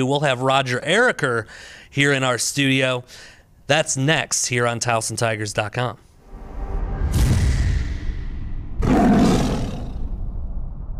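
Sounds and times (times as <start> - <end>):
loud roar-like hit: 6.2 - 10.9
low rumble: 6.2 - 10.9.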